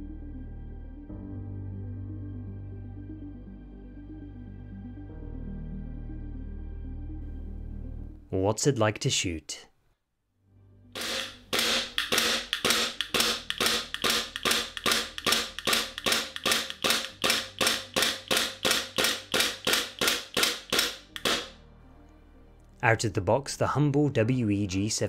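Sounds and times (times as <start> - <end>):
airsoft pistol firing: 11.0 - 21.6.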